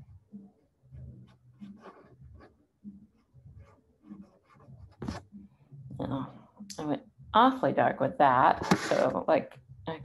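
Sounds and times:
brush strokes on paper: 8.6s - 9.2s.

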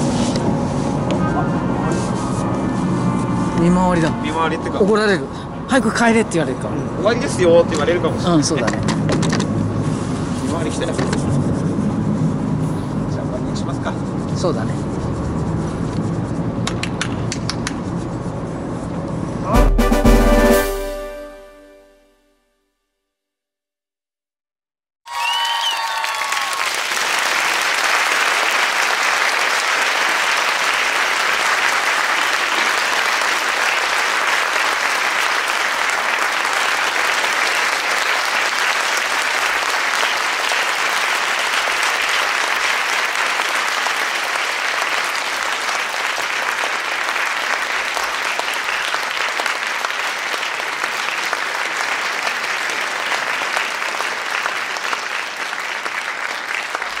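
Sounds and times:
crowd applause: 25.1s - 57.0s.

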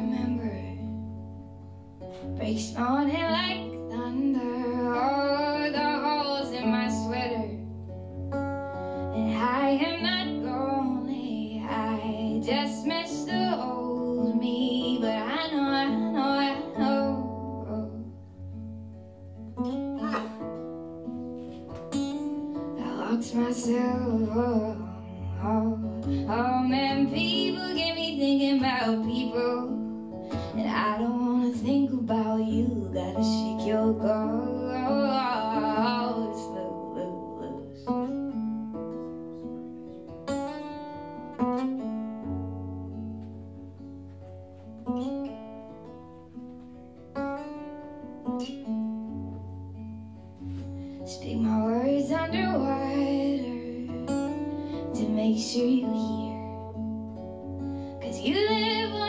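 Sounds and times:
woman singing: 0.0s - 1.2s, 2.2s - 7.8s, 9.0s - 18.2s, 20.0s - 20.6s, 22.8s - 38.3s, 51.0s - 59.0s
acoustic guitar: 0.0s - 59.0s.

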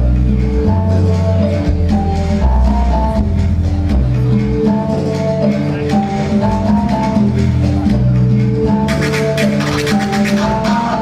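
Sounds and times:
bass notes: 0.0s - 11.0s
guitar: 0.0s - 11.0s
light percussion: 0.0s - 11.0s.

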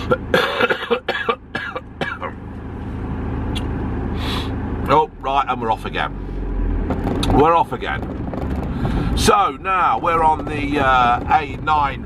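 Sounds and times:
man coughing: 0.0s - 2.4s
van engine idling rumble: 0.0s - 12.0s.

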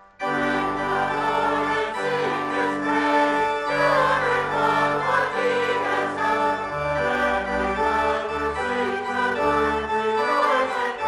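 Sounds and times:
church organ chords: 0.0s - 11.0s
voices singing a hymn: 0.2s - 11.0s.

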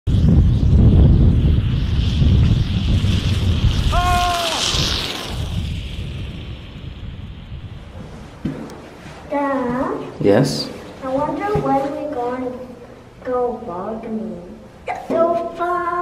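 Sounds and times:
wind on microphone: 0.0s - 9.0s
sled scraping down ice: 2.0s - 6.1s
high whoop: 3.8s - 4.9s.

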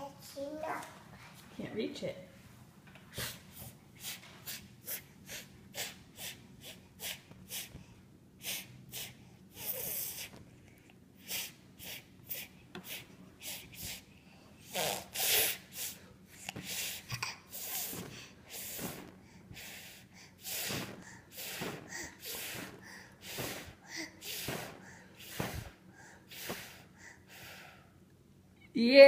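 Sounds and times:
toddler blowing breathily: 14.6s - 27.7s.

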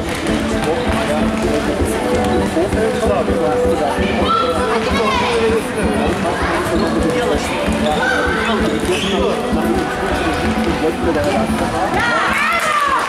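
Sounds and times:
voices calling and shouting: 0.1s - 13.0s.

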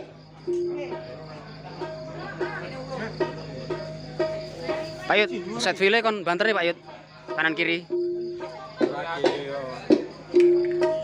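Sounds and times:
keyboard notes: 0.0s - 6.2s, 9.9s - 11.0s.

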